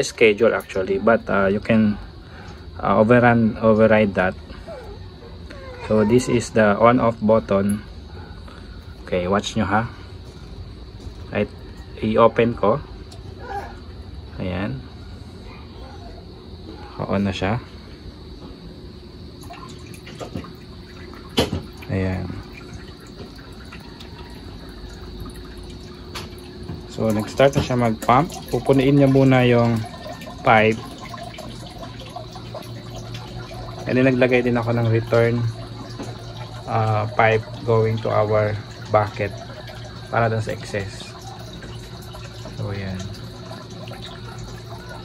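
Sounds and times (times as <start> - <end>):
water trickling and dripping: 0.0 - 15.5, 16.2 - 45.0
faint steady hum: 0.0 - 45.0.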